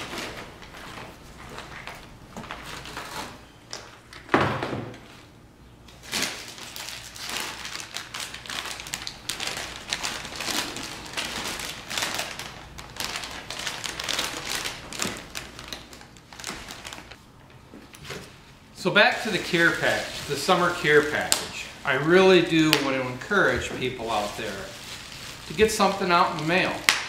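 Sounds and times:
bubble wrap crinkling: 0:05.9 - 0:17.2, 0:18.2 - 0:27.0.

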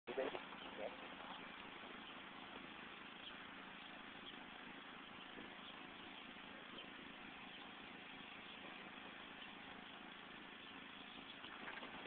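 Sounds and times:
faint outdoor hiss: 0:00.1 - 0:12.0.

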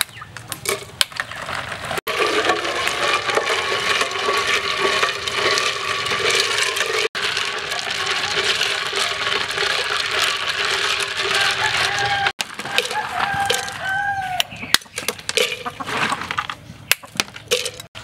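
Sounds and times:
spoon stirring ice cubes: 0:02.0 - 0:15.8, 0:17.4 - 0:18.0
ice clinking against glass: 0:02.1 - 0:14.0.

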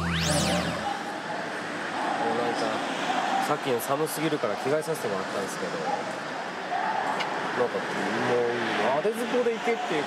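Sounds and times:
car traffic passing: 0:00.0 - 0:10.0.

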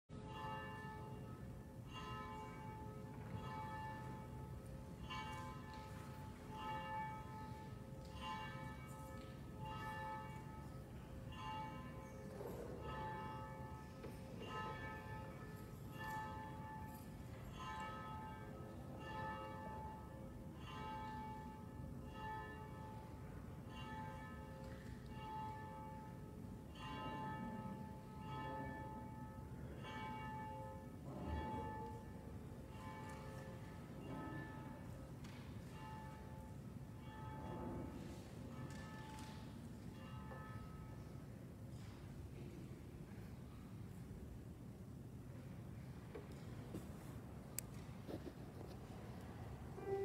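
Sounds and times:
church bells ringing: 0:00.1 - 0:43.0, 0:49.7 - 0:50.0.

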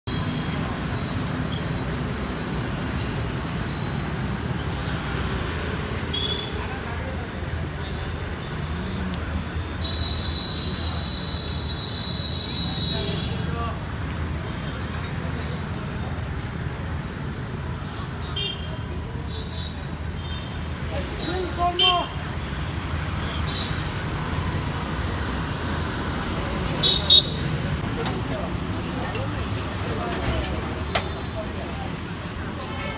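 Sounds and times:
roadside traffic rumble: 0:00.0 - 0:32.9.

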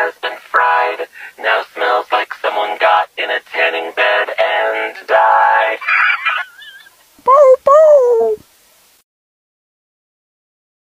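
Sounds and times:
person singing comic song: 0:07.2 - 0:08.4.

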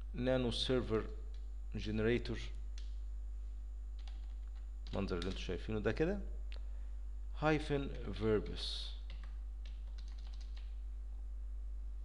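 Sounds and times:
low electrical hum: 0:00.0 - 0:12.0
keyboard key presses: 0:09.1 - 0:10.7.

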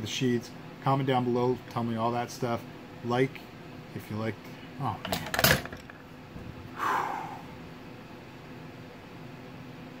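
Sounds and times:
low hum: 0:05.6 - 0:08.4
breathy sigh through a hand: 0:06.8 - 0:07.6.

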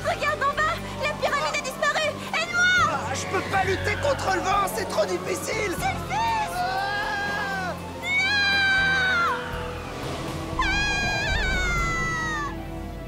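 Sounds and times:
music: 0:00.0 - 0:13.0.

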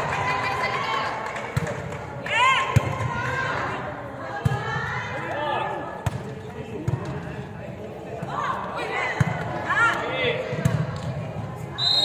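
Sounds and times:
players shouting in echoing hall: 0:00.0 - 0:06.2, 0:08.1 - 0:11.0.

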